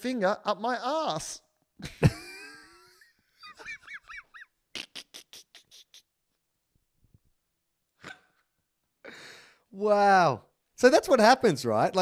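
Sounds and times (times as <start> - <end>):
breathy panting laughs: 1.8 - 6.1
squealing laughter: 3.4 - 6.1.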